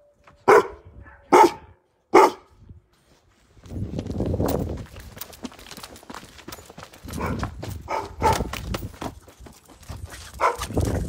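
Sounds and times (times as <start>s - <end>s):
dog barking: 0.4s - 2.5s, 7.2s - 8.5s, 10.4s - 10.7s.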